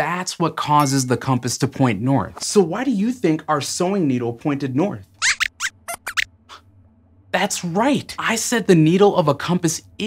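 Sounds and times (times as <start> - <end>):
high-pitched puppet squeaks: 5.2 - 6.3.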